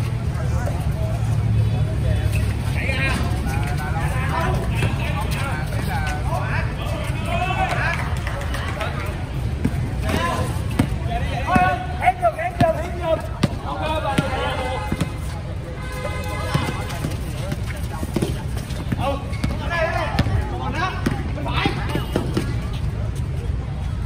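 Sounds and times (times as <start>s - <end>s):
players shouting: 2.8s - 22.6s
basketball bouncing on hard court: 9.6s - 11.8s, 12.5s - 15.2s, 16.5s - 22.6s.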